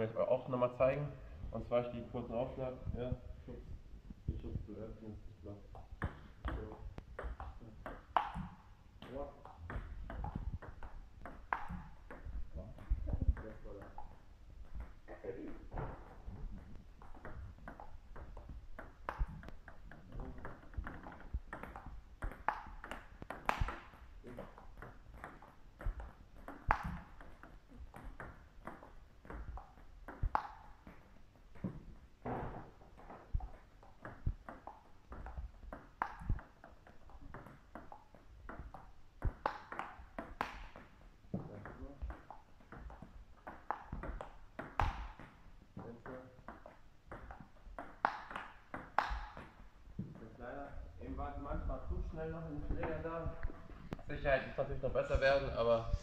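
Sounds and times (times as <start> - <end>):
ping pong ball bouncing on table: 5.7 - 50.1
ping pong ball hitting bats: 5.7 - 50.7.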